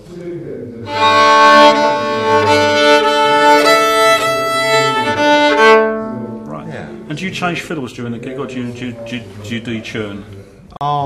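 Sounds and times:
fiddle bowing chords: 0:00.8 - 0:07.2.

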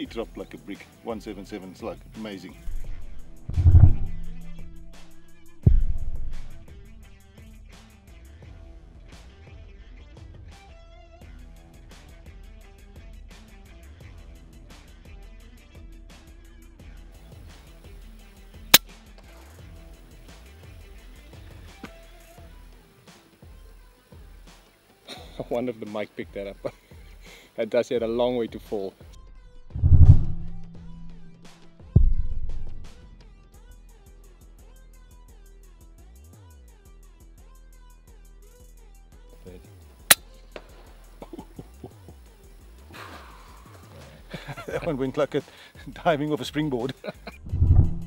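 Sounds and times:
background music: 0:00.0 - 0:13.4, 0:16.7 - 0:33.3, 0:39.3 - 0:47.4
air rifle shot: 0:02.7 - 0:06.9, 0:40.1 - 0:41.2.

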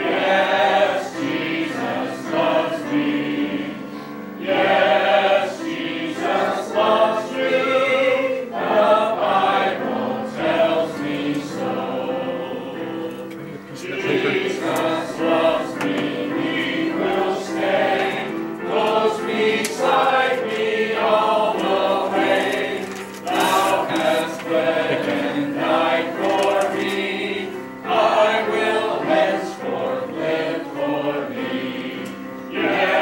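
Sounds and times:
congregation singing a hymn: 0:00.0 - 0:33.0.

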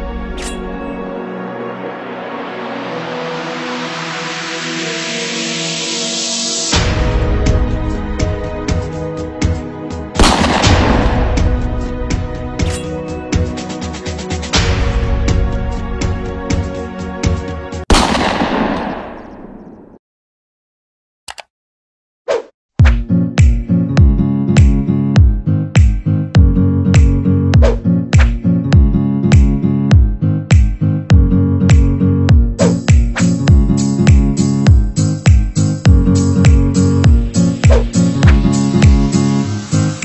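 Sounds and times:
background music with deep drum: 0:06.8 - 0:17.4, 0:22.8 - 0:39.1
whoosh sound effect: 0:37.7 - 0:38.0.

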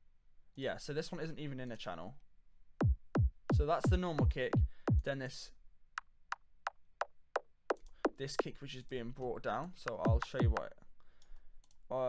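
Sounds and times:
thin clicky kick drum hits: 0:02.8 - 0:05.1.

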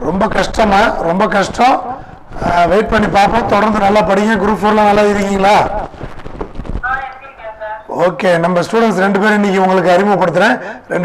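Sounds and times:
knocks and rubbing on microphone: 0:01.4 - 0:07.2.

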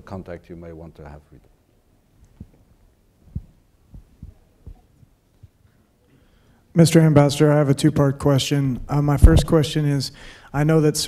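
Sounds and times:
microphone handling thumps: 0:02.3 - 0:05.6, 0:08.7 - 0:09.8.

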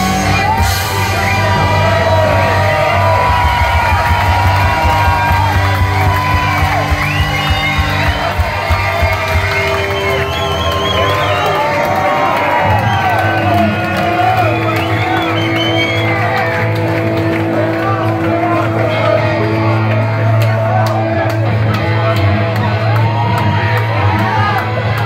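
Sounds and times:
crowd cheering and shouting: 0:00.0 - 0:25.0
punk rock band playing: 0:00.0 - 0:25.0
drum hits: 0:00.6 - 0:09.9.

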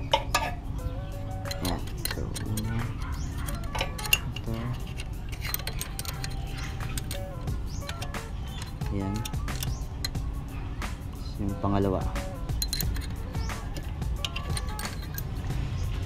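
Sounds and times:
background music: 0:00.0 - 0:16.0
light metallic clicks and clinks: 0:01.3 - 0:11.3, 0:12.4 - 0:15.6.

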